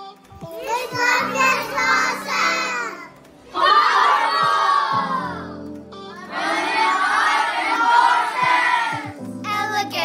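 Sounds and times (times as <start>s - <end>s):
young children shouting together: 0.6s - 5.6s, 6.2s - 9.2s.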